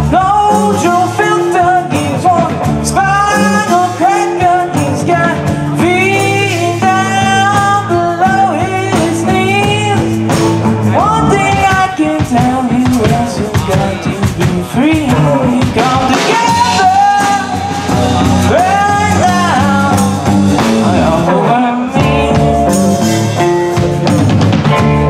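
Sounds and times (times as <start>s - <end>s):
person singing: 0.0s - 24.0s
drum kit: 0.0s - 25.0s
electric guitars: 0.0s - 25.0s.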